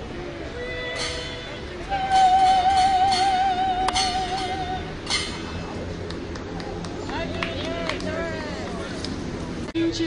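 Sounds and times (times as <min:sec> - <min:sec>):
woman singing with vibrato: 0:00.5 - 0:05.0.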